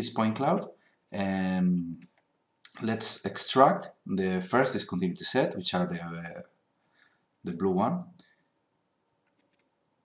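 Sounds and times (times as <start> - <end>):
computer mouse clicks: 9.2 - 9.8.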